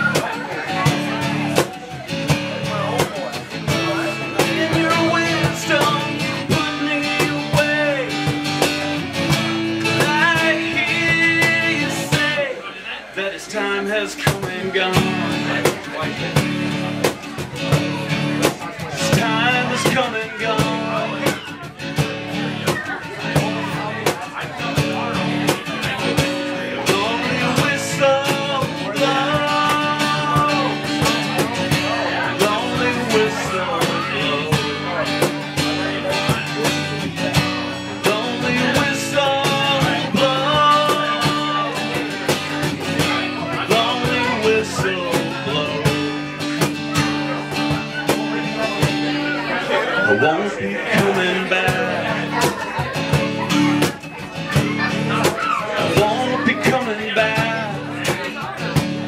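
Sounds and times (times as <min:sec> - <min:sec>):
acoustic guitar: 0:00.0 - 0:59.0.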